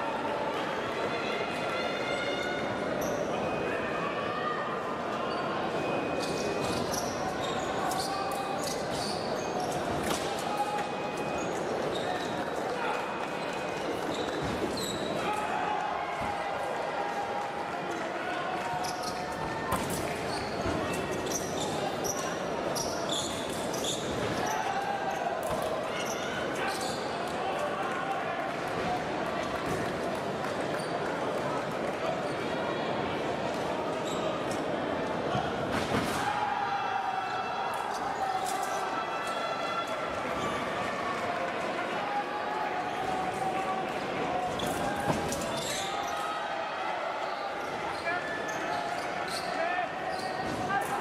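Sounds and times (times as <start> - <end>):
murmur of voices: 0.0 - 51.0.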